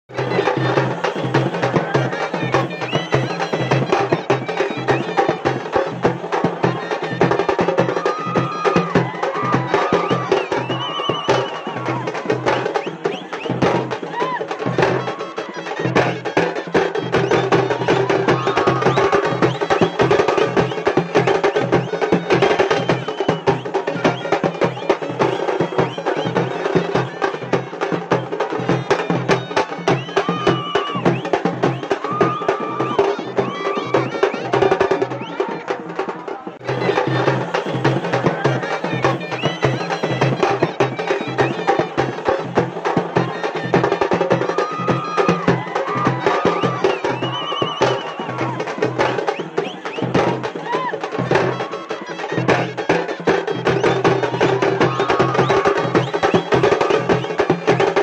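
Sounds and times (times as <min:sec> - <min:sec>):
procession drums beating fast: 0:00.1 - 0:58.0.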